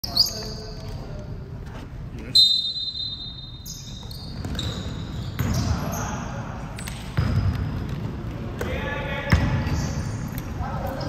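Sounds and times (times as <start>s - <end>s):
referee whistle blast: 2.3s - 3.6s
basketball bouncing on court: 4.0s - 5.8s, 6.8s - 10.0s
players' voices: 5.4s - 11.0s.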